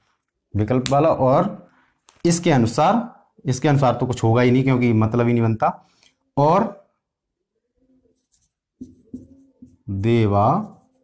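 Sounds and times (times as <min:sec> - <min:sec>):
marker pen scratching on whiteboard: 0:08.0 - 0:11.0.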